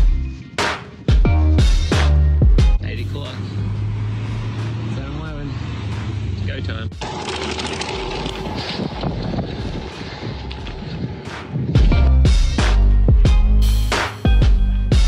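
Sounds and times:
bicycle tyres crunching gravel: 7.0 - 11.9
wind noise: 7.7 - 13.4.

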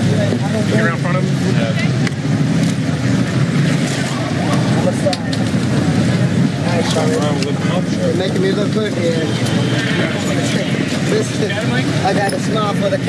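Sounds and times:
people talking indistinctly: 0.0 - 13.0.

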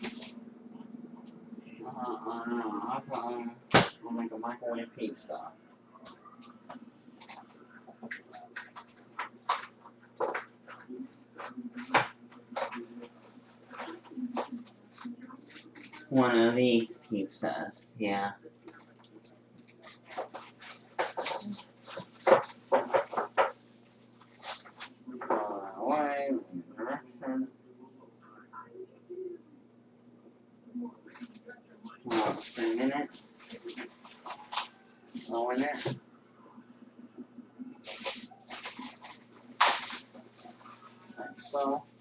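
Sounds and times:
steady low hum: 0.0 - 42.0.

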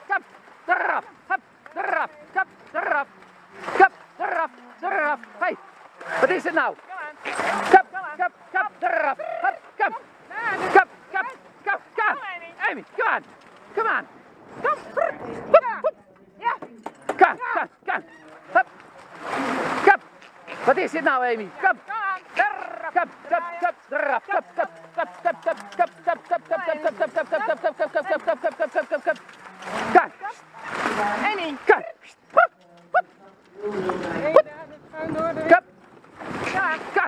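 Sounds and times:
person calling to horse: 7.0 - 13.2, 21.6 - 30.5, 31.3 - 34.5.

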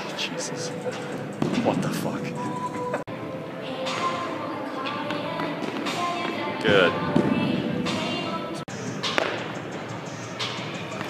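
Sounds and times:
faint background music: 0.0 - 11.0
indoor sports hall noise: 0.0 - 11.0.

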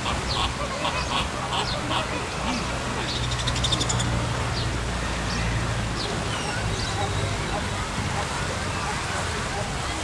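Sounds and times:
flamingos honking: 0.0 - 2.8
pond fountain hissing: 0.0 - 10.0.

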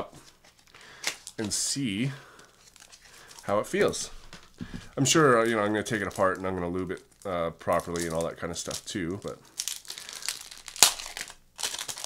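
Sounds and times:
plastic bag crinkling: 0.4 - 12.0.

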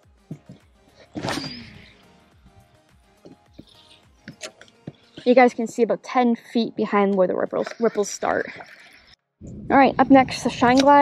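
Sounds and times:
faint background music: 0.0 - 9.0, 9.6 - 11.0.

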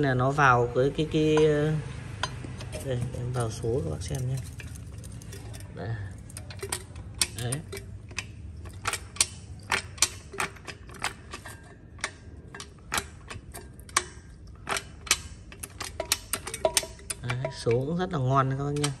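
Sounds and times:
gearbox metallic clicks: 1.4 - 19.0.

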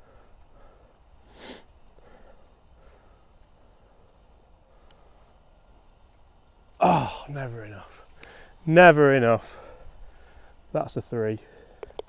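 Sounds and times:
breathy sniff: 0.0 - 3.3.

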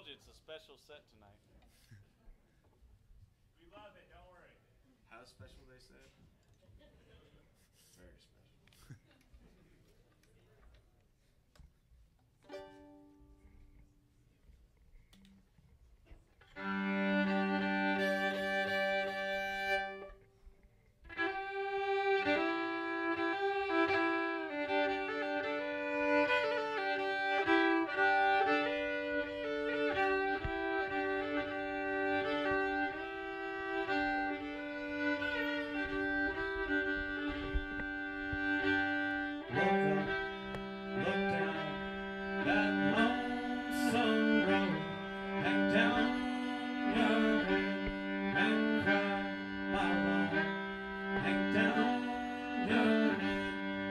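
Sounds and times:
solo fiddle playing: 12.4 - 14.0, 16.4 - 53.9.

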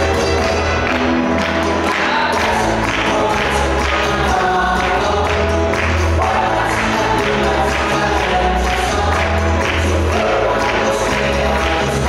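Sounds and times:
cha-cha-cha dance music with singing: 0.0 - 12.0.

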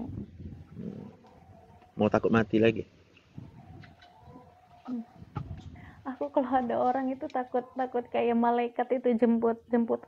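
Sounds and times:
dove cooing: 0.0 - 2.0, 3.4 - 6.0.

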